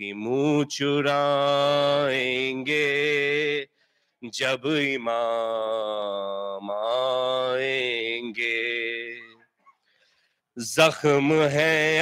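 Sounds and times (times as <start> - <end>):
man chanting: 4.2 - 9.3, 10.6 - 12.0.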